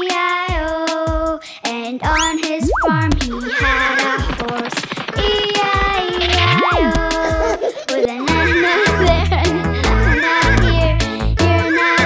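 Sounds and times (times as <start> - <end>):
children's song music: 0.0 - 12.0
horse whinnying: 3.4 - 4.1.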